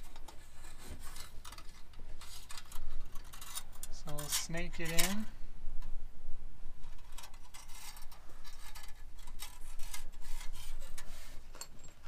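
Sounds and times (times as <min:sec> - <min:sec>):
wire scraping against metal: 0:00.0 - 0:05.3, 0:06.8 - 0:12.0.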